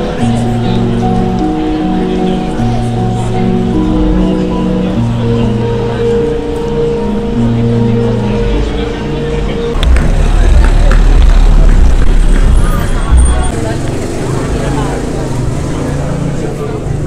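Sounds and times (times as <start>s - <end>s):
background voices of passers-by: 0.0s - 17.0s
low traffic rumble: 0.0s - 17.0s.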